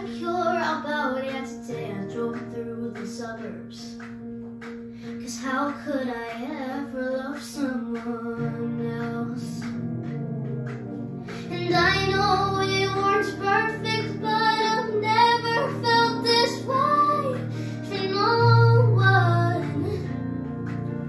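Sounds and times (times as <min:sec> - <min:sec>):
girl singing into a microphone: 0:00.0 - 0:04.0, 0:05.0 - 0:09.8, 0:11.4 - 0:20.3
instrumental backing track: 0:00.0 - 0:21.0.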